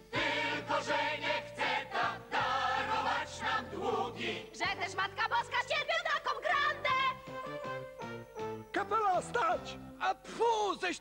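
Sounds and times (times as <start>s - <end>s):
group of voices singing in chorus: 0.0s - 5.0s.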